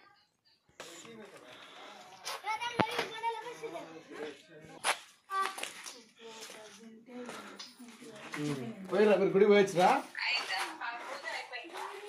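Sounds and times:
people talking: 10.2 - 12.0.

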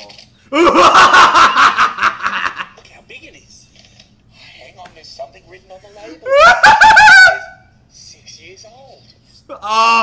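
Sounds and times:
man laughing loudly: 0.5 - 2.8, 6.2 - 7.6.

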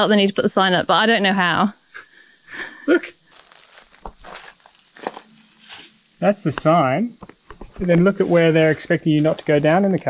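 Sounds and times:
insects droning: 0.0 - 10.0
footsteps: 3.2 - 8.1.

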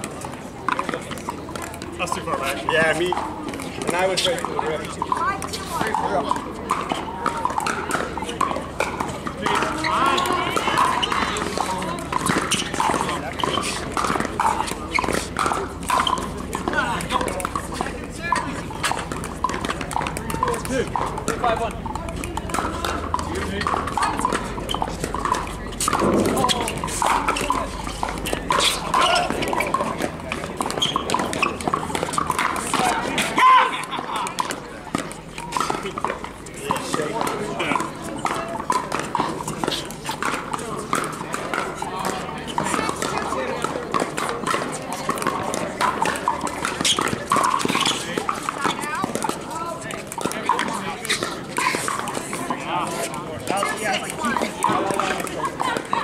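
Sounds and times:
voices of players: 0.0 - 56.0
paddles striking plastic ball: 3.0 - 33.4.

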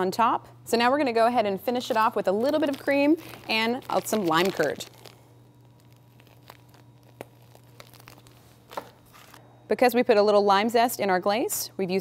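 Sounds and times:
plastic piping bag crinkling: 1.8 - 9.4.

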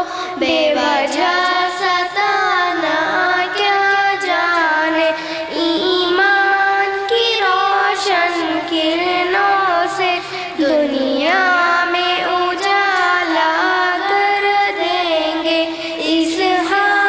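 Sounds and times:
girls singing into microphones: 0.0 - 17.0.

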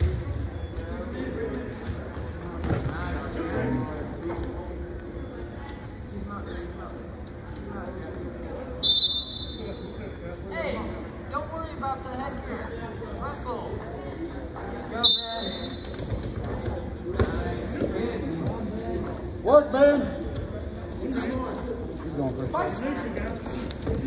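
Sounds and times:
referee's whistle blasts: 8.8 - 9.8, 15.0 - 15.8.

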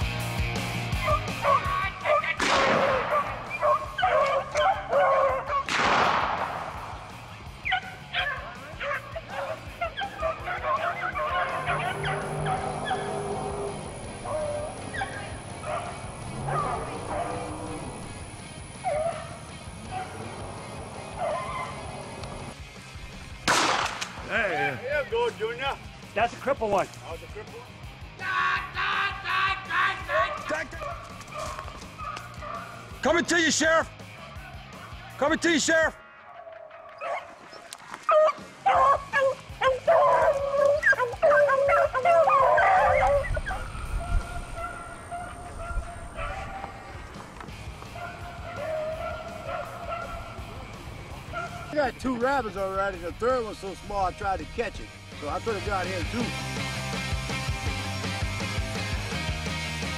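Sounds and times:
background music: 0.0 - 59.9
hounds baying: 0.8 - 5.8, 7.0 - 22.6, 30.0 - 33.2, 33.9 - 35.4, 36.0 - 53.0
sweeping rushes of noise: 11.0 - 18.8.

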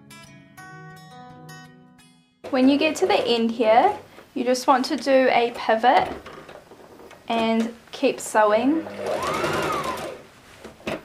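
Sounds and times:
sewing machine stitching: 8.7 - 10.2.

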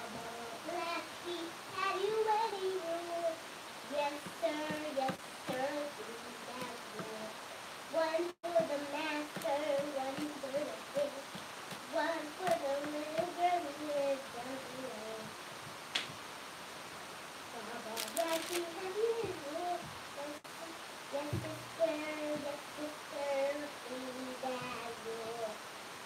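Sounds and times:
woman singing softly: 0.0 - 15.4, 17.5 - 25.6.

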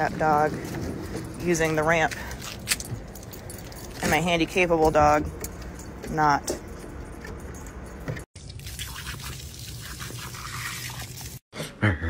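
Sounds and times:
dog collar tags jingling: 0.0 - 8.3.

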